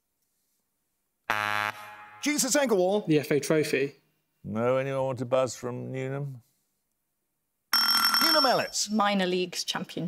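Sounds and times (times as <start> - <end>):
electronic buzzer: 1.3 - 2.3.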